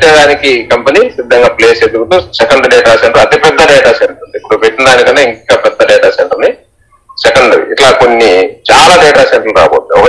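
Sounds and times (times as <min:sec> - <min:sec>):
person talking: 0:00.0 - 0:10.0.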